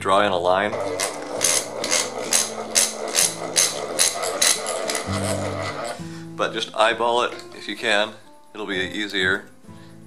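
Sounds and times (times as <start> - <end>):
quiet background music: 0.0 - 10.0
bench vise cranking: 0.7 - 6.1.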